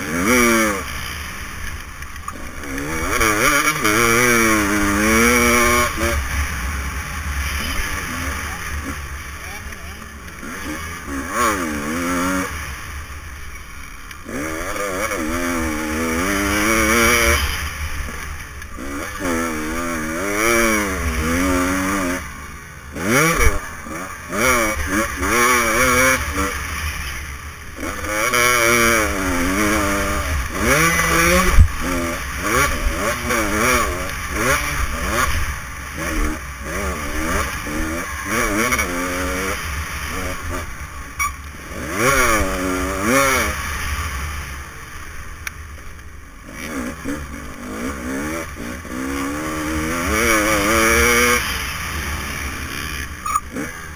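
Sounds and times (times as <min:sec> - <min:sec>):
dirt bike engine revving: 0:00.0 - 0:53.9.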